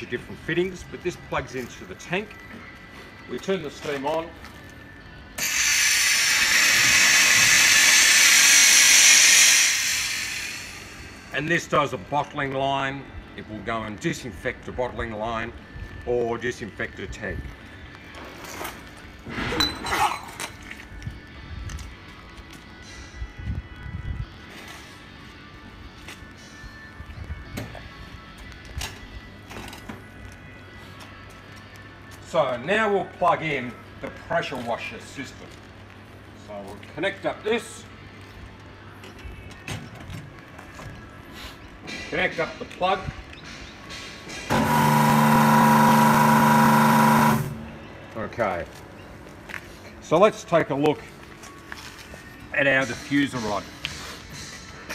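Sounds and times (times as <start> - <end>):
faint background music: 0.0 - 54.9
machine humming and hissing: 5.4 - 11.4, 44.4 - 48.0.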